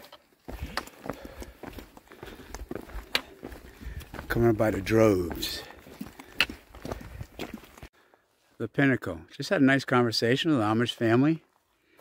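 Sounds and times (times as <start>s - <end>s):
boots crunching on gravel: 0.4s - 7.9s.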